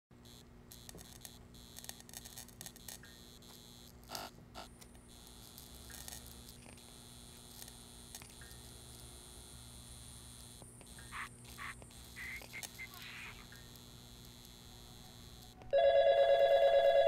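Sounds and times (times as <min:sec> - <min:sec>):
electrical clicks and crackles: 0:00.2 - 0:15.8
fluorescent light hum: 0:00.2 - 0:17.0.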